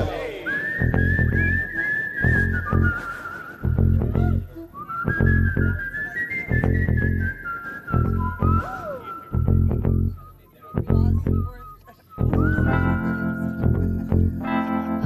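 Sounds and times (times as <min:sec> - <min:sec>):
looped electronic beat: 0:00.0 - 0:00.5
person whistling a melody: 0:00.0 - 0:14.5.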